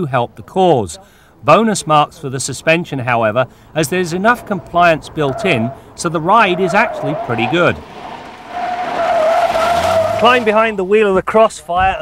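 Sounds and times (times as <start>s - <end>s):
tyres squealing: 3.8s - 10.6s.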